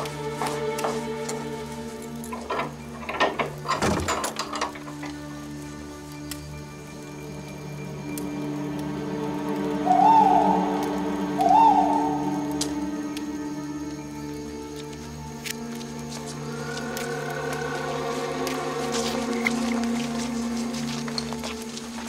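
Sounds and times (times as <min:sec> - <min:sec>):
low droning film score: 0:00.0 - 0:22.0
short rising and falling hoots: 0:09.8 - 0:12.9.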